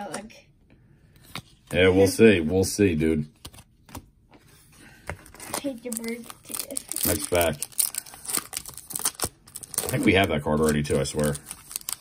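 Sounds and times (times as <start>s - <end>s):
foil wrapper tearing and crinkling: 5.4s - 12.0s.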